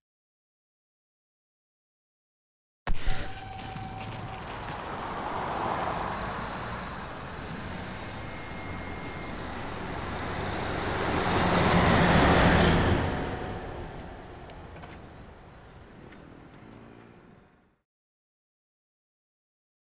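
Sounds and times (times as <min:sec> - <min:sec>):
road traffic: 0:03.3 - 0:17.8
truck passing: 0:03.6 - 0:17.8.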